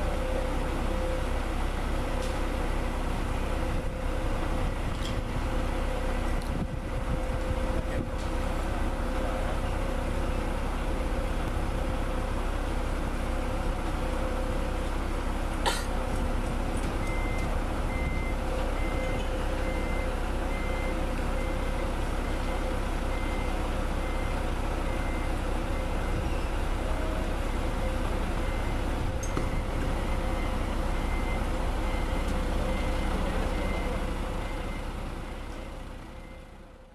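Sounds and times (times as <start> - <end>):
heavy truck diesel engines running: 0.0 - 36.9
reversing alarm beeping: 17.0 - 36.8.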